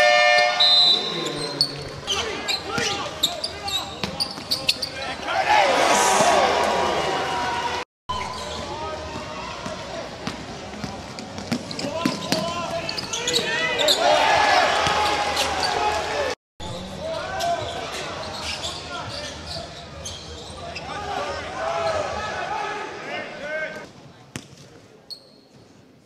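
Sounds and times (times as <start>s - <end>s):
players and crowd voices: 0.6s - 26.0s.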